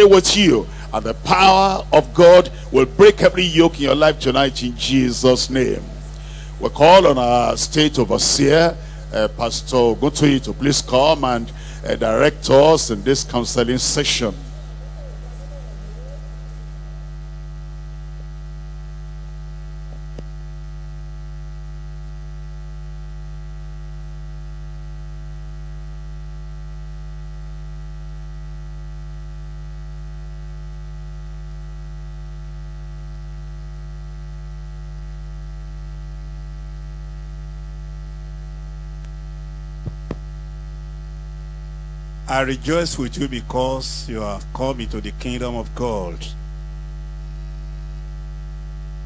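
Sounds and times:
electrical mains hum: 0.0s - 49.0s.

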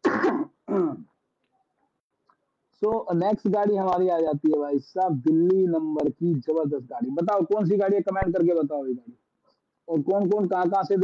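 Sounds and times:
man clearing his throat: 0.0s - 1.1s.

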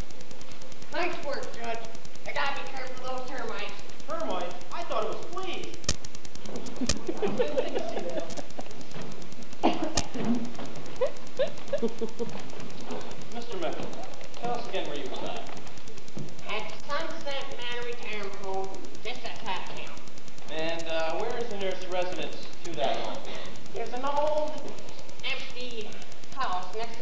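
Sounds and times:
actors speaking dialogue: 1.0s - 5.8s, 12.8s - 27.0s.

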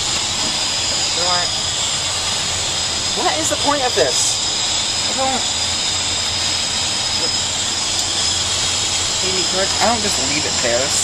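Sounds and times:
jet airliner roar in flight: 0.0s - 11.0s
thin high whine: 0.0s - 11.0s.

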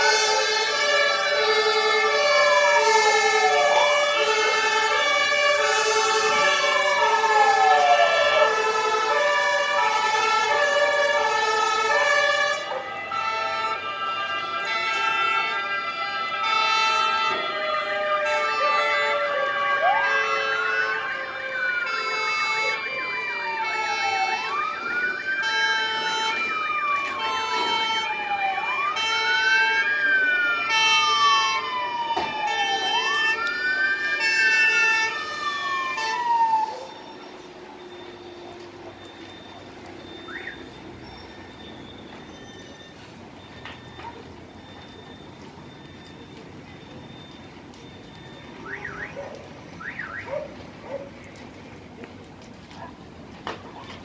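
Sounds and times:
pulsing siren tones: 0.0s - 51.4s
wailing siren: 0.0s - 54.0s.

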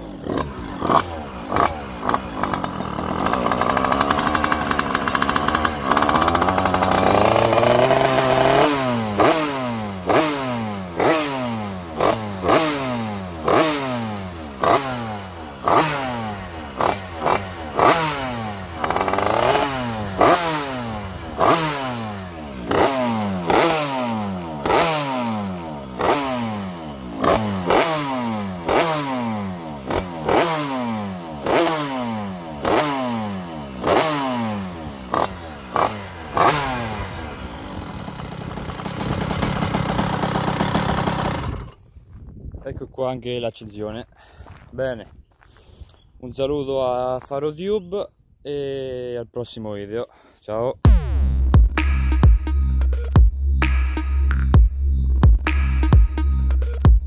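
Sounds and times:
two-stroke engine revving: 0.0s - 41.8s.

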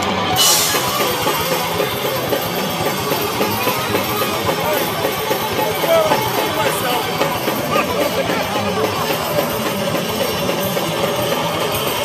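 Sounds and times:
punk band playing live: 0.0s - 12.0s
sharp drum hits: 0.4s - 11.2s.

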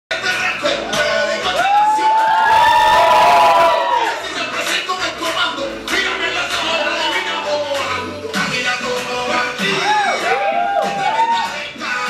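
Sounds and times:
audience cheering: 0.9s - 4.4s, 9.6s - 11.7s
high-pitched whoops: 1.5s - 4.2s, 9.7s - 11.7s.

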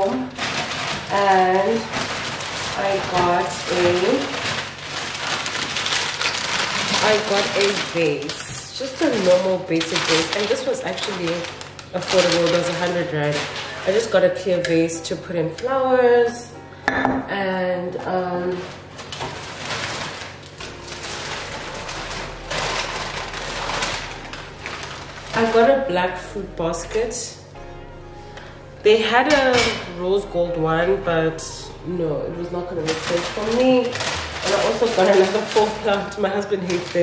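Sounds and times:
plastic bag and paper crinkling: 0.0s - 14.6s, 18.4s - 27.2s, 32.6s - 37.0s.

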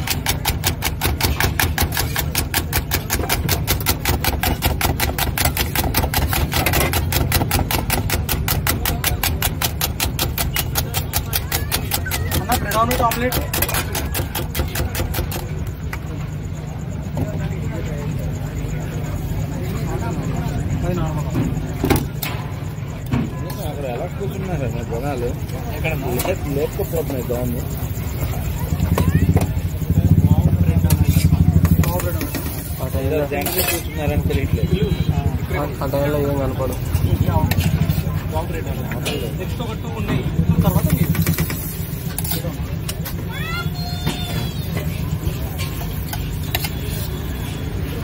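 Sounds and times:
voices talking: 0.0s - 48.0s.

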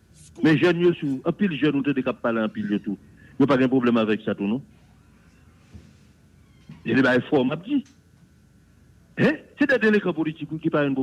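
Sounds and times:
faint background noise: 0.0s - 11.0s
man speaking: 0.3s - 4.7s, 6.8s - 7.9s, 9.2s - 11.0s.

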